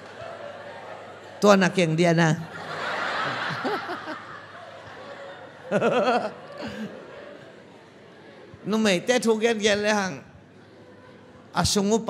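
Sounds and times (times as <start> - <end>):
audience laughing: 0.0 - 8.4
man talking: 8.6 - 10.3.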